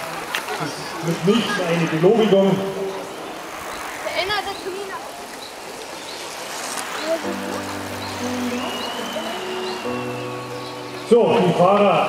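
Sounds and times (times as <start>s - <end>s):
distant voice call: 0.0s - 12.0s
outdoor background noise: 0.0s - 12.0s.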